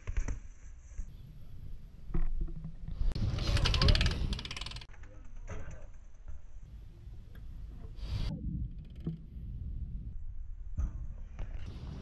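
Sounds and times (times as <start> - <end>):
bike tyres rolling on concrete: 0.0 - 12.0
rapid mechanical ticking: 3.4 - 4.9.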